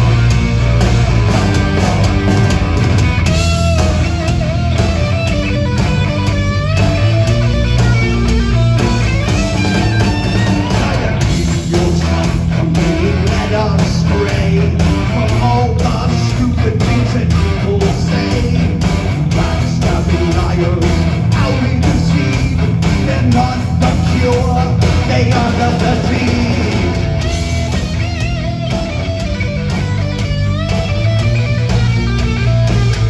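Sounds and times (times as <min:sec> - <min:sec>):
heavy metal band playing live: 0:00.0 - 0:33.0.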